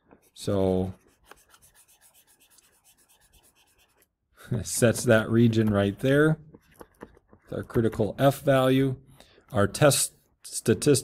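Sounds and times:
stylus scratching on drawing tablet: 0:00.0 - 0:04.2.

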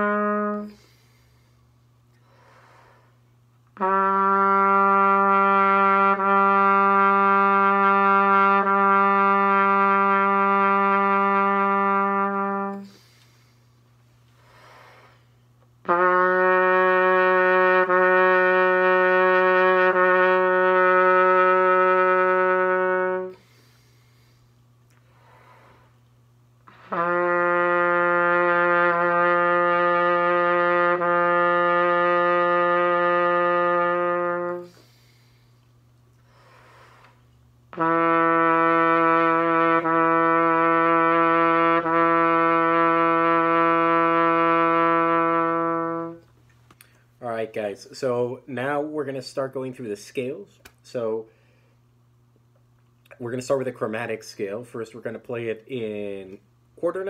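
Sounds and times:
trumpet playing long held notes: 0:00.0 - 0:01.2, 0:03.8 - 0:13.2, 0:15.8 - 0:23.9, 0:26.6 - 0:35.4, 0:37.7 - 0:46.3.

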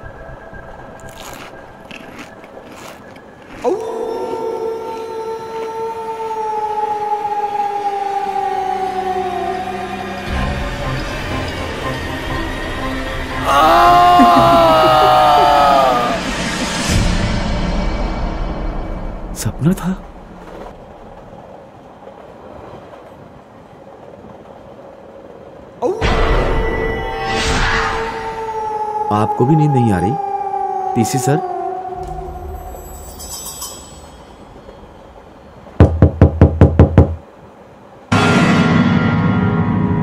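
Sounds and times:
train running on tracks: 0:00.0 - 0:27.8, 0:31.6 - 0:40.0
man's long held scream: 0:13.4 - 0:16.3, 0:28.0 - 0:32.0.

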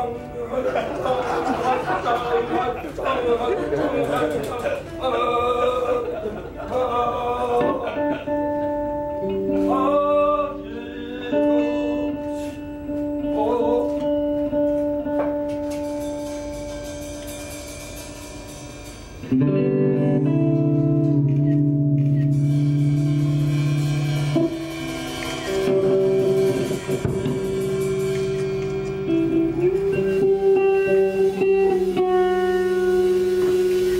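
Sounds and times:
electric guitar chords: 0:00.0 - 0:33.9
live band music: 0:07.5 - 0:33.9.

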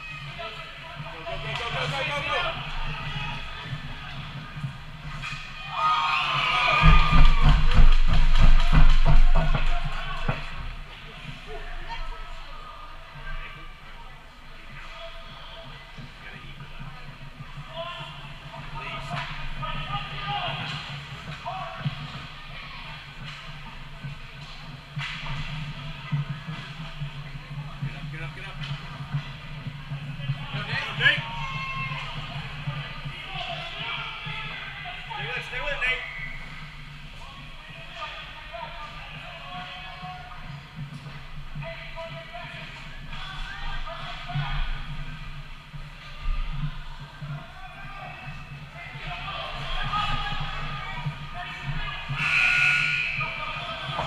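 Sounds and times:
echoing children's shouts: 0:05.6 - 0:07.6
heavy thumps and knocks: 0:06.8 - 0:10.6.

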